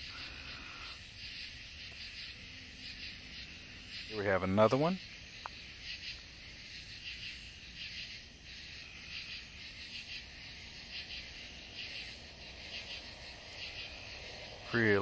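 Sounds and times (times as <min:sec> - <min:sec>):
night insects chirping: 0:00.0 - 0:15.0.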